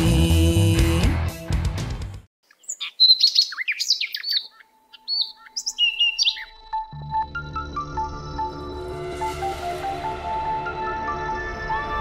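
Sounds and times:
background music with bass: 0:00.0 - 0:02.3
small birds chirping: 0:02.4 - 0:06.8.

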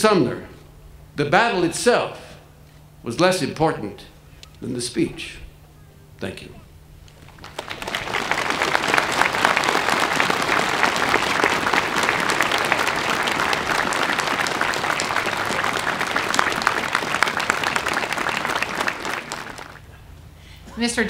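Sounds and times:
crowd applauding: 0:07.1 - 0:19.9.

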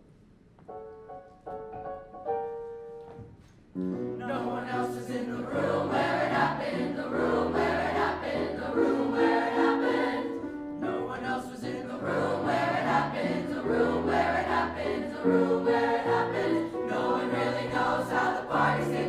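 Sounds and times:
grand piano accompaniment: 0:00.0 - 0:19.0
mixed choir singing: 0:04.2 - 0:19.0.

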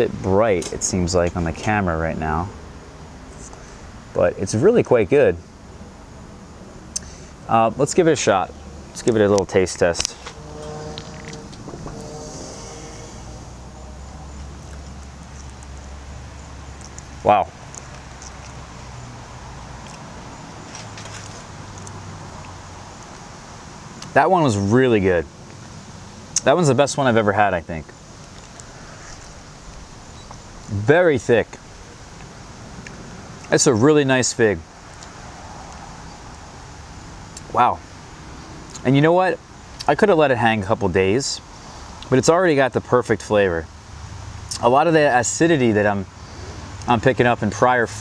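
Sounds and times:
distant engine hum: 0:00.0 - 0:42.2
outdoor background hiss and rumble: 0:00.0 - 0:48.0.

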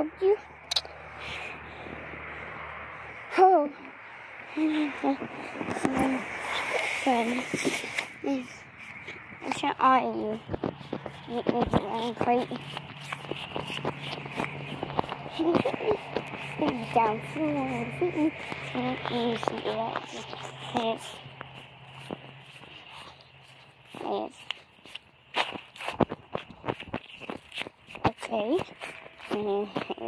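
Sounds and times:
faint background noise: 0:00.0 - 0:30.0
footsteps on grass: 0:04.6 - 0:30.0
rustling: 0:04.6 - 0:30.0.

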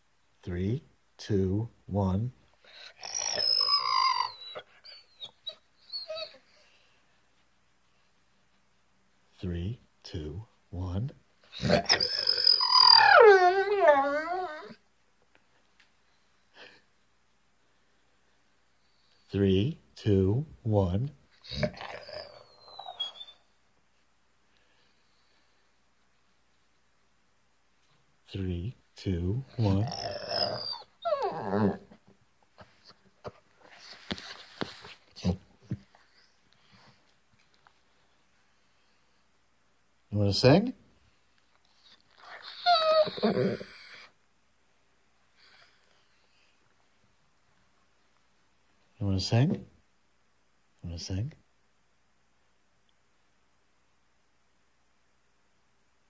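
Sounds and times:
young dog howling: 0:02.9 - 0:04.7, 0:11.6 - 0:14.8, 0:29.5 - 0:32.0, 0:42.3 - 0:44.1.

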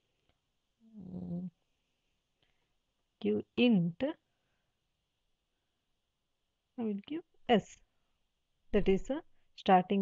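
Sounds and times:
person humming: 0:00.9 - 0:01.5.

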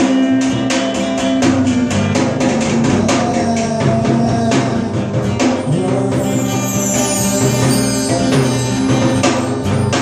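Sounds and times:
drum kit beat: 0:00.0 - 0:10.0
guitar playing: 0:00.0 - 0:10.0.

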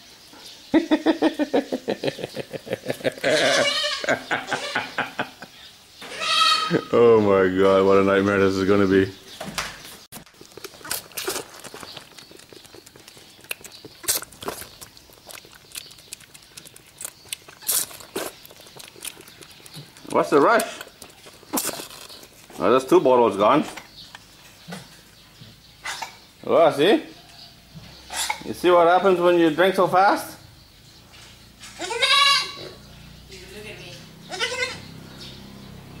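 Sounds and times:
goat kid bleating: 0:03.2 - 0:04.9, 0:06.0 - 0:06.9, 0:31.8 - 0:32.7, 0:34.3 - 0:34.9
goat sucking from bottle: 0:10.2 - 0:22.5.

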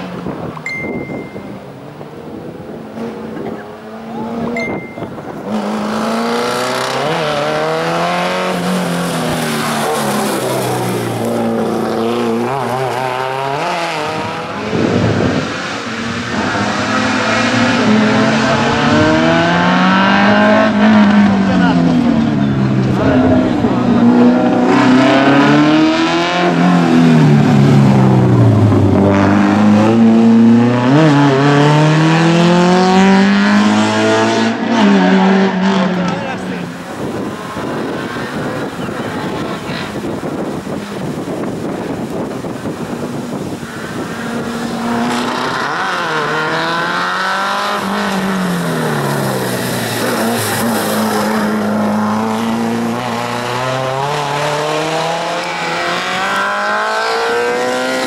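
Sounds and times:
race car engine revving: 0:01.7 - 0:58.0.

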